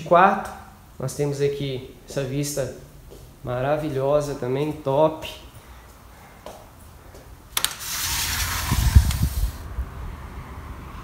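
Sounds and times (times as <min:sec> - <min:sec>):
glass door sliding open: 0:07.6 - 0:09.7.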